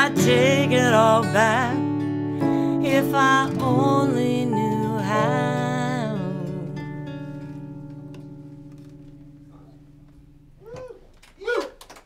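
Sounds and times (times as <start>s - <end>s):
person singing: 0.0s - 7.0s
acoustic guitar chord ringing: 0.0s - 10.6s.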